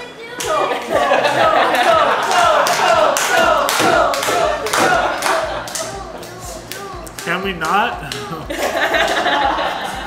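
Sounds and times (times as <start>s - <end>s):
people clapping: 0.3s - 9.6s
group chanting: 0.5s - 7.1s.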